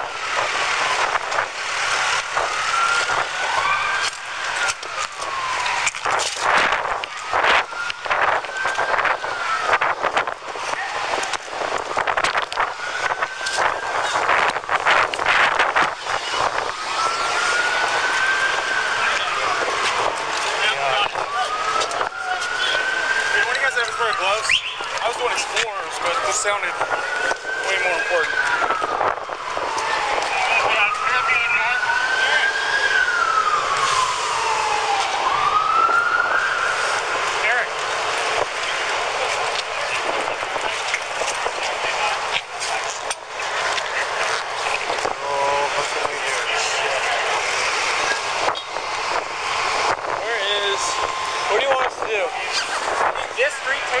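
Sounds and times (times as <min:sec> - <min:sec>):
emergency vehicle siren wailing: 0:00.0 - 0:54.0
street noise: 0:00.0 - 0:54.0.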